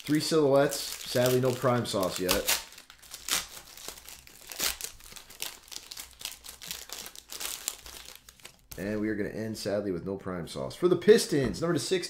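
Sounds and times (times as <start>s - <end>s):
foil wrapper tearing and crinkling: 0.0s - 8.8s.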